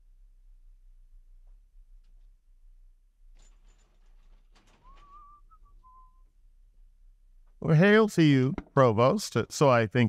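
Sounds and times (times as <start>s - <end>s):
squeaking wheels: 4.5s - 6.2s.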